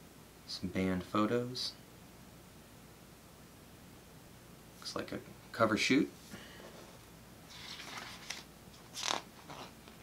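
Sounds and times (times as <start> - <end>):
page turning swish: 7.5 - 9.7
paper rustle: 7.5 - 10.0.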